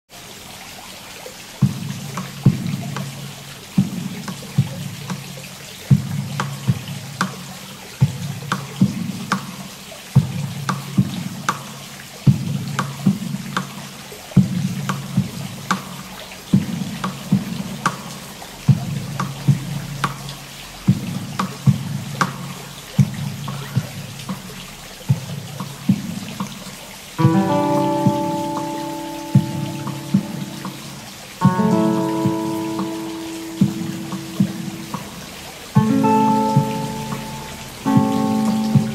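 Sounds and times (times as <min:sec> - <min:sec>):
acoustic guitar plucked arpeggio: 0:27.2 - 0:38.9
higher sustained guitar notes: 0:27.2 - 0:38.9.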